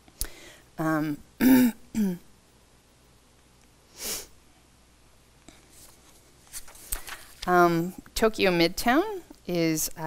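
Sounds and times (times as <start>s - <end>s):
woman clearing her throat: 1.4s - 2.3s.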